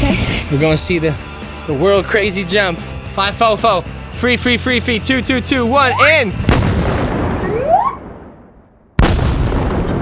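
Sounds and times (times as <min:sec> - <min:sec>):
explosion sound effect: 0:06.5 - 0:10.0.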